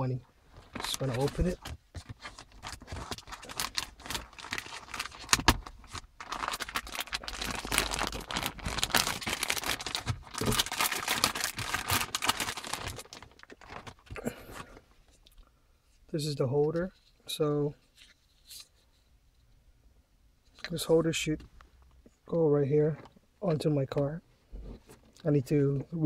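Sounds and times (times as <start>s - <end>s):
plastic bag crinkling: 0.5s - 14.8s.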